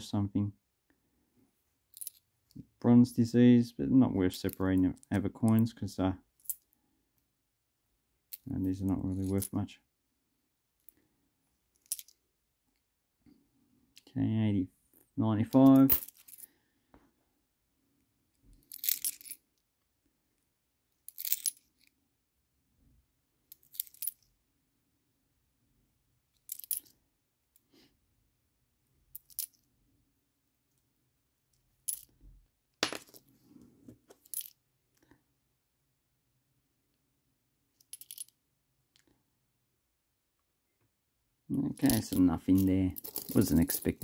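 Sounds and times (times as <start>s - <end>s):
coins clinking: 15.8s - 16.5s, 18.7s - 19.4s, 21.1s - 21.7s, 41.8s - 44.0s.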